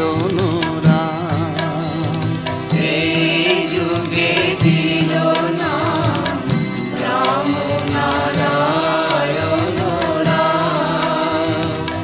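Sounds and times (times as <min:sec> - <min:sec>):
devotional melody over held tones: 0:00.0 - 0:12.0
percussion strokes: 0:00.0 - 0:12.0.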